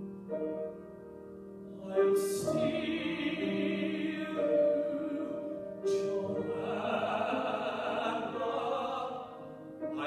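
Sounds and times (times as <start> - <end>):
grand piano accompaniment: 0.0 - 10.0
man singing: 1.9 - 10.0.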